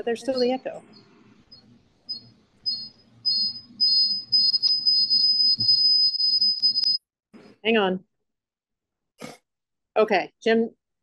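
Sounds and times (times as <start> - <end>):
high-pitched feedback squeal: 1.5 - 7.0.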